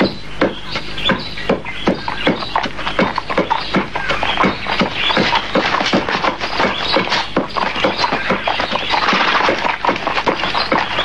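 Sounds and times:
rapid hard knocks: 0.0 - 11.0.

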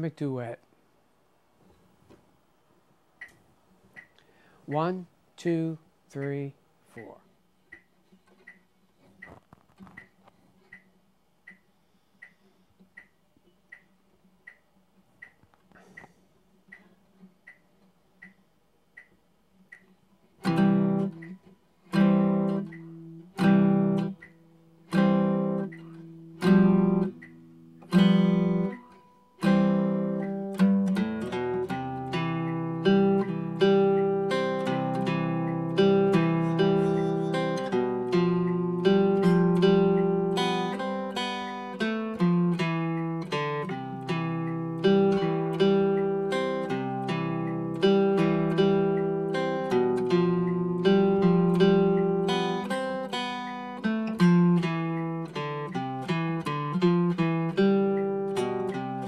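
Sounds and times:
soft clicks: 3.2 - 20.1
faint metronome ticks: 3.2 - 59.0
electric guitar chords ringing: 20.4 - 59.0.

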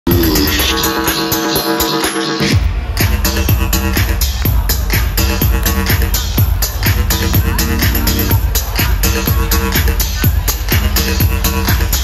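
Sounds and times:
loud dance music: 0.1 - 12.0
deep bass: 2.5 - 12.0.

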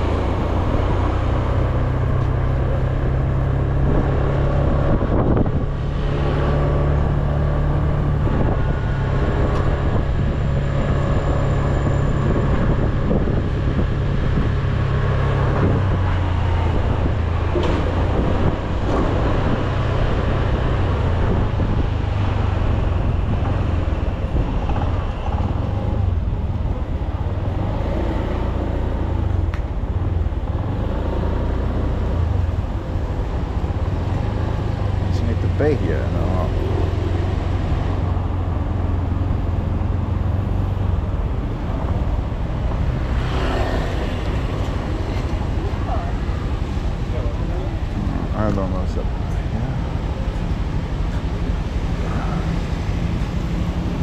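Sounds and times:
street traffic: 0.0 - 54.0
wind and road noise: 0.0 - 54.0.

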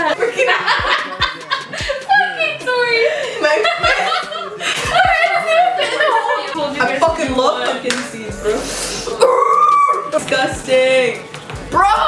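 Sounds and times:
women laughing loudly: 0.0 - 6.8.

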